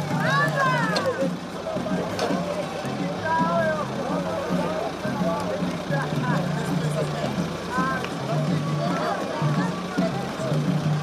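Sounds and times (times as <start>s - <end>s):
diesel engine running: 0.0s - 11.0s
voices: 0.0s - 11.0s.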